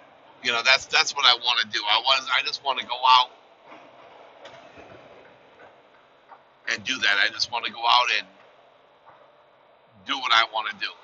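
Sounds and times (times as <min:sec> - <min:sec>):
road and engine noise: 0:00.0 - 0:11.0.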